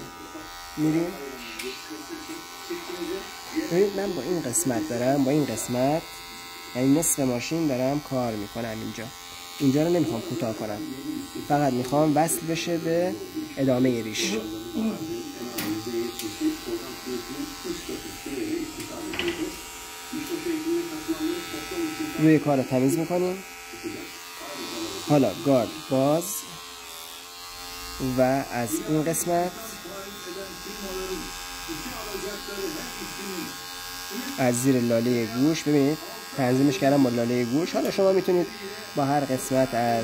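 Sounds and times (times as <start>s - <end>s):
electric hair clipper buzzing: 0.0s - 40.0s.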